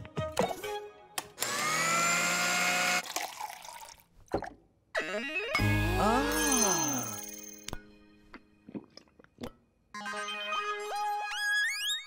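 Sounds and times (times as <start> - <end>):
blender motor whirring: 1.4 - 3.0.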